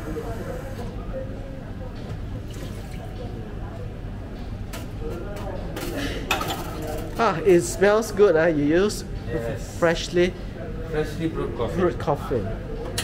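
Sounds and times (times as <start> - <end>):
espresso machine hum: 0.0 - 0.9.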